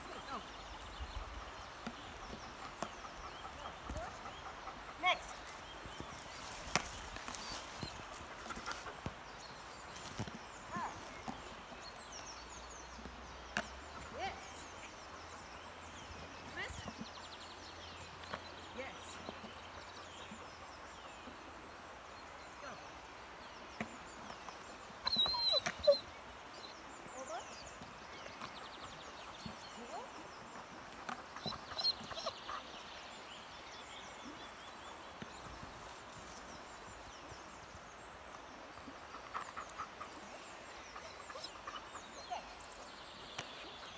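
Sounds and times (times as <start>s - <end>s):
faint birds chirping: 0.0s - 43.9s
dog yelping: 25.0s - 26.0s, 31.8s - 32.6s.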